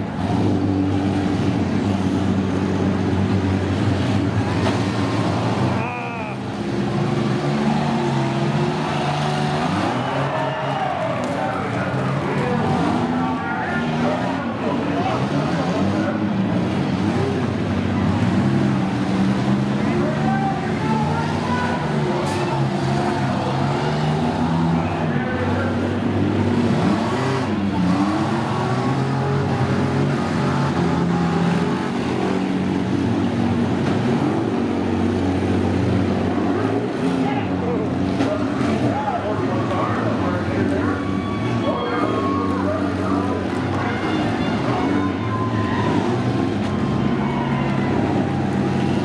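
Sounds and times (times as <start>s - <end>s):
van engines revving: 0.0s - 49.0s
vans ramming: 0.0s - 49.0s.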